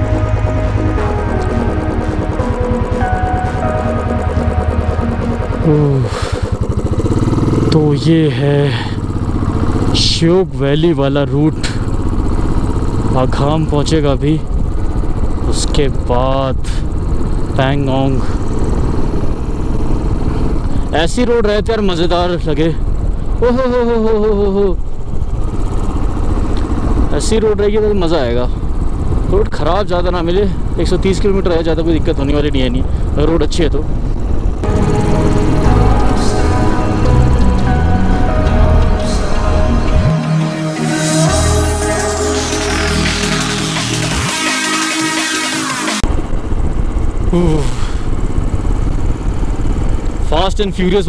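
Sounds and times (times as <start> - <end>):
background music: 0.0 - 7.2, 34.6 - 46.0
motorcycle engine running: 0.0 - 51.0.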